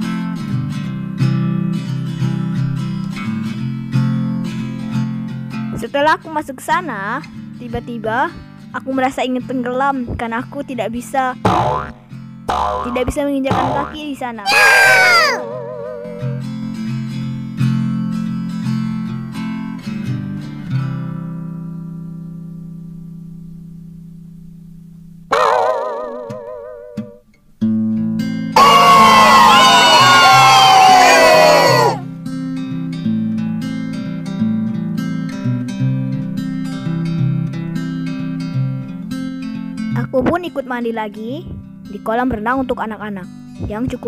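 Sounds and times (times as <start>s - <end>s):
plucked acoustic guitar: 9.4s - 14.4s, 15.4s - 21.5s, 32.0s - 44.0s
short wobbling tone: 12.5s - 14.0s, 14.6s - 16.6s, 25.3s - 27.2s
sliding warbling tones: 12.5s - 14.0s, 14.6s - 16.6s.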